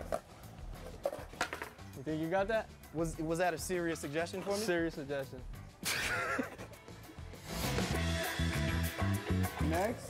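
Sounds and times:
skateboard clacks: 0:00.0 - 0:01.8
background music: 0:00.0 - 0:10.0.

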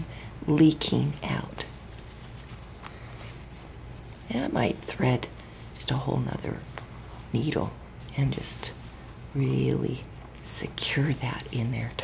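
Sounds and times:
fabric rustling: 0:00.0 - 0:12.0
steady low hum: 0:00.0 - 0:12.0.

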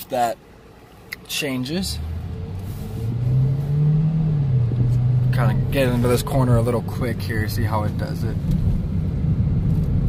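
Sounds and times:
car engine accelerating: 0:01.8 - 0:10.0.

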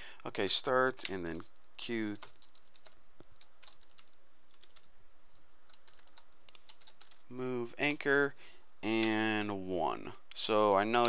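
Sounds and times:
typing on keyboard: 0:02.2 - 0:04.9, 0:05.7 - 0:07.2.

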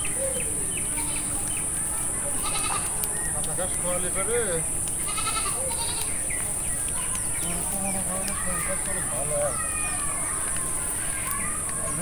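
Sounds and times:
goats bleating: 0:02.4 - 0:02.9, 0:05.0 - 0:06.1.

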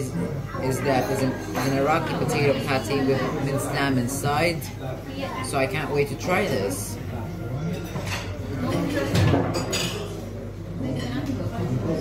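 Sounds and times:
diners chattering: 0:00.0 - 0:12.0
tableware clinking: 0:00.8 - 0:02.6, 0:07.6 - 0:10.2.

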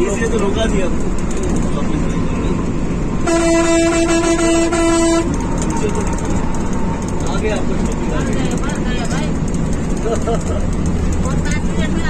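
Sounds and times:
coach engine and tyres drone: 0:00.0 - 0:12.0.

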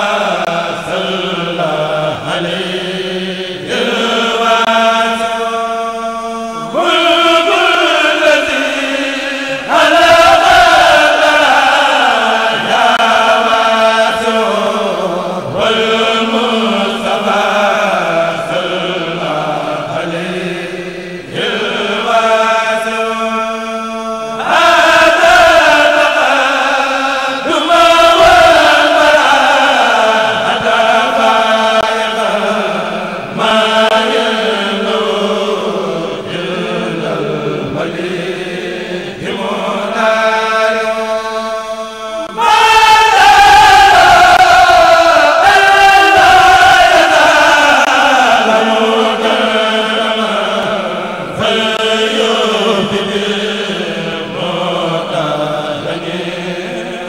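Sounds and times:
group of men chanting: 0:00.0 - 0:57.0
solo man chanting: 0:00.0 - 0:57.0.

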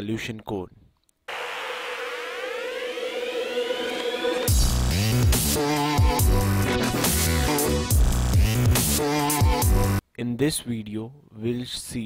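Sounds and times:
held synth note: 0:01.3 - 0:04.8
synthesized riser: 0:01.3 - 0:09.4.

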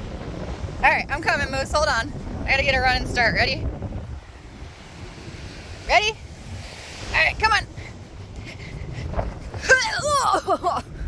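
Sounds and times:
surf washing: 0:00.0 - 0:11.0
wind buffeting microphone: 0:00.0 - 0:11.0
person calling out: 0:09.6 - 0:10.6.

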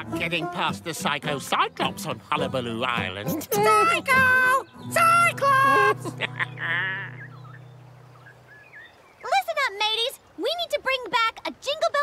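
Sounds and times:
faint bird chirps: 0:03.3 - 0:09.4.

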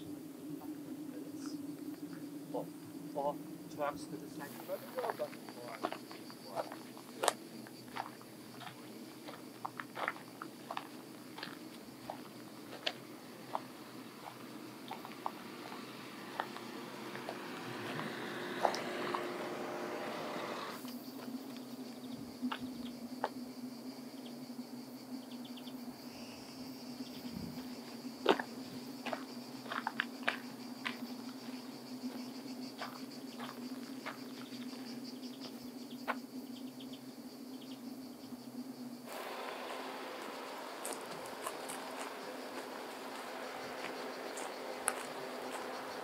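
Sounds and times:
insect buzz: 0:00.0 - 0:46.0
footsteps on dry dirt: 0:04.5 - 0:21.4, 0:27.6 - 0:35.6, 0:39.1 - 0:46.0.

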